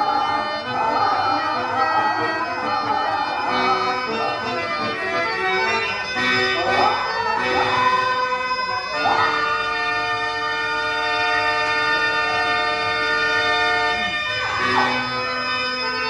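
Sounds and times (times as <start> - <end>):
harmonium playing: 0.0 - 16.0.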